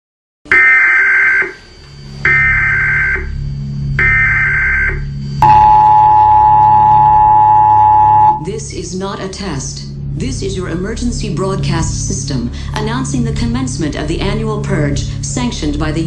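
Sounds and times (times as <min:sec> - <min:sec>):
low steady drone: 0:01.6 - 0:16.0
two-tone attention signal: 0:04.0 - 0:08.4
warbling data tone bursts: 0:04.0 - 0:08.4.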